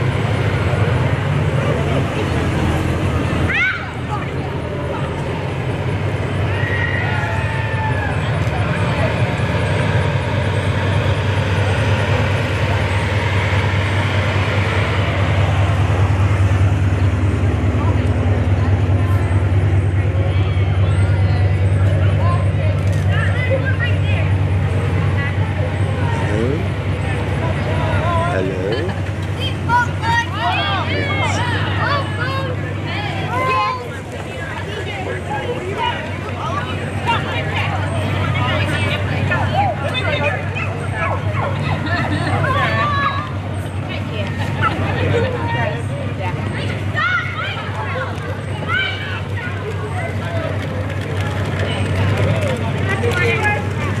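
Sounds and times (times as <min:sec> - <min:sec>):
car engine rumble: 0:00.0 - 0:54.0
scattered voices: 0:00.0 - 0:54.0
children calling out: 0:03.3 - 0:04.6, 0:46.6 - 0:50.4.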